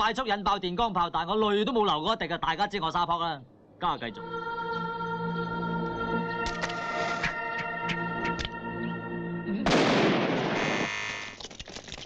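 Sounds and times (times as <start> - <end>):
firecracker explosion rumble: 9.7 - 10.6.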